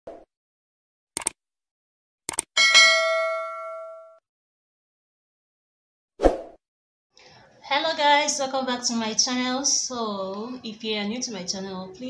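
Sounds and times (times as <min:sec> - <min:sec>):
bright bell ding: 0:02.6 - 0:04.2.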